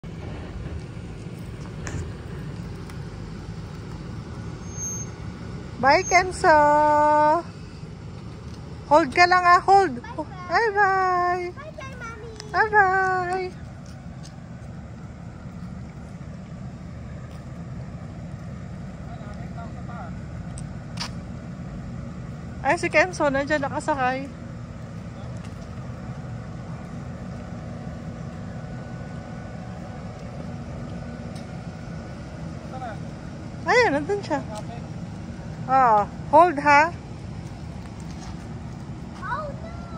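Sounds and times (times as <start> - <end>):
car engine running: 0.0 - 39.9.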